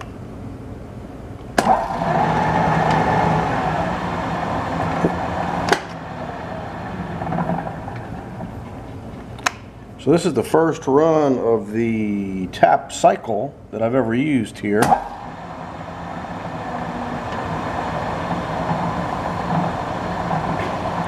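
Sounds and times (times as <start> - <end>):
machine spindle humming and whining: 1.6 - 9.3, 14.9 - 21.0.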